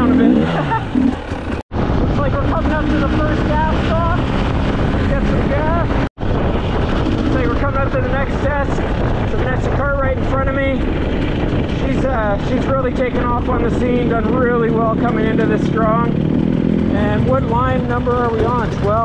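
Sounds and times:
dirt bike engine running: 0.0 - 19.0
wind noise on microphone: 0.0 - 19.0.

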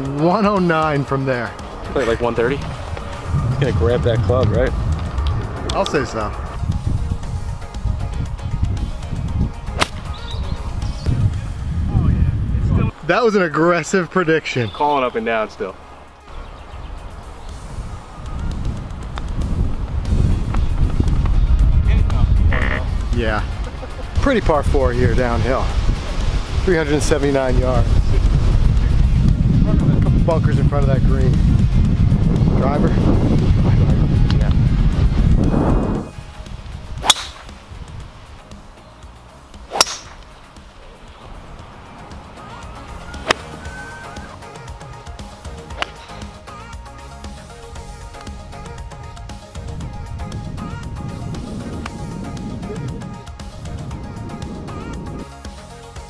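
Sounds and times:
background music with deep bass: 0.0 - 56.0
loud low rumble: 2.2 - 7.6
golf clubs striking balls: 9.7 - 10.1, 37.0 - 37.7, 39.6 - 41.1, 42.8 - 44.3, 45.5 - 46.4.

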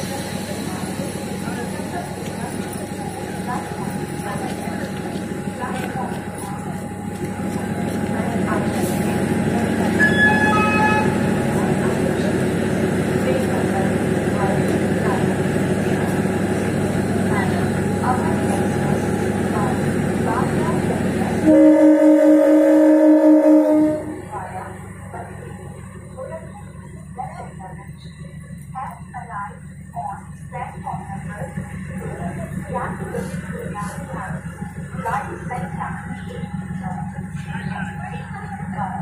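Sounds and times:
diesel train engine running: 0.0 - 39.0
brief high tone: 10.0 - 11.3
two-tone train horn blast: 10.0 - 11.3, 21.4 - 24.3.

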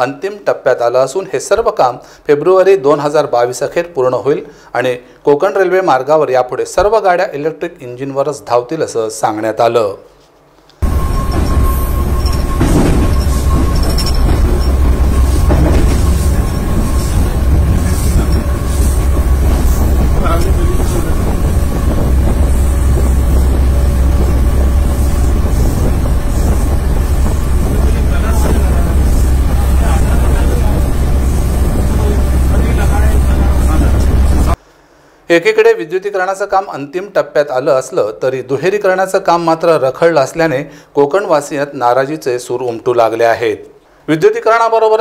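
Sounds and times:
train rumbling on track: 10.8 - 34.6.

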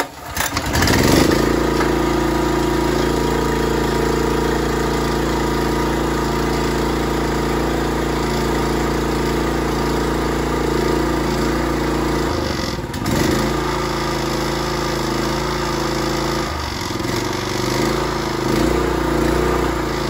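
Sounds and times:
pressure washer engine running: 0.0 - 20.0.

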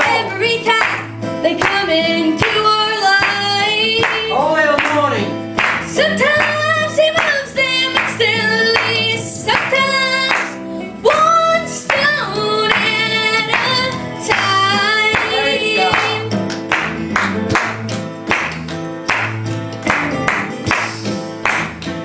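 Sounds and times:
instrumental backing: 0.0 - 22.0
congregation hand clapping: 0.8 - 1.8, 3.2 - 6.6, 8.8 - 10.6, 12.7 - 22.0.

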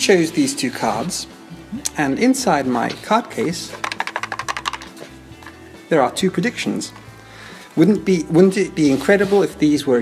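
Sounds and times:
soft background music: 0.0 - 10.0
playing cards clicking: 3.4 - 5.0.

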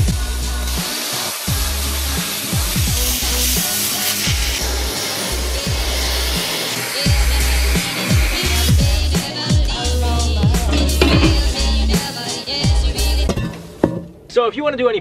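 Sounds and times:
music with heavy bass beat: 0.0 - 13.4
plasma cutter hissing: 0.0 - 13.8.

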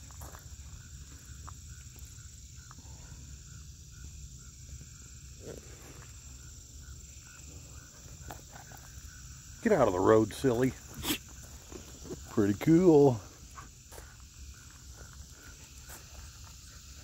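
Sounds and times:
cricket chirping: 0.0 - 17.0
crickets trilling: 0.0 - 17.0.

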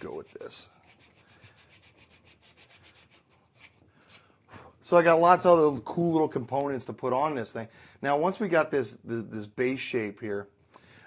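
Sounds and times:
man speaking: 0.0 - 0.8, 4.8 - 10.5
sandpaper rubbing on wood: 0.0 - 3.8.

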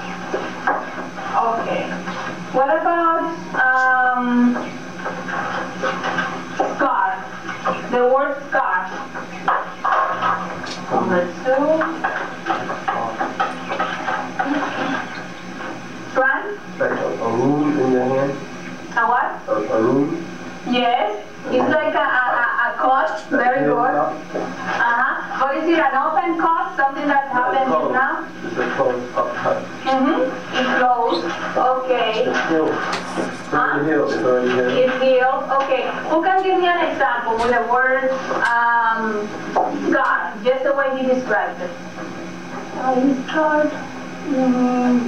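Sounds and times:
voices talking: 0.0 - 5.1, 5.8 - 41.8
steady low hum: 0.0 - 45.0.

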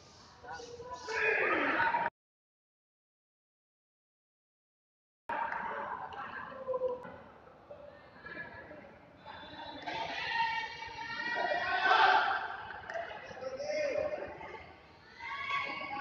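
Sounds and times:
people shouting and yelling: 0.5 - 2.1, 9.3 - 16.0.

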